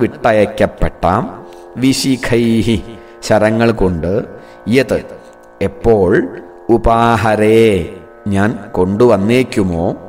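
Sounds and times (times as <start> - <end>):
man chanting: 0.0 - 10.0.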